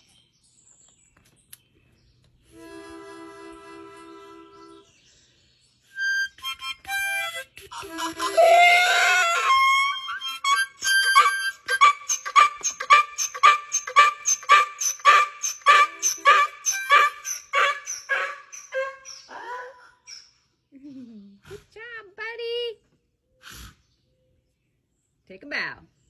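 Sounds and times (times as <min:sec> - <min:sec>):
harmonica chord: 0:02.5 - 0:04.9, 0:06.0 - 0:18.4
donkey braying: 0:06.0 - 0:20.3.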